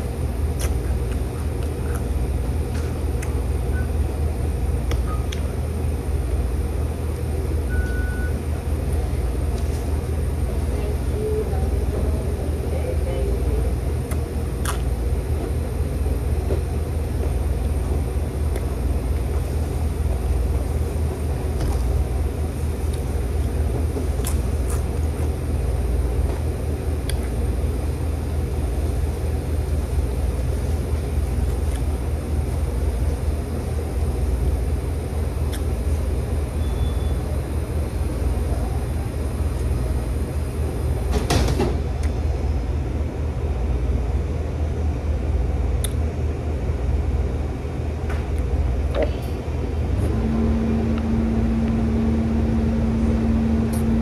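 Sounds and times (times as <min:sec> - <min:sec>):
low background rumble: 0:00.0 - 0:54.0.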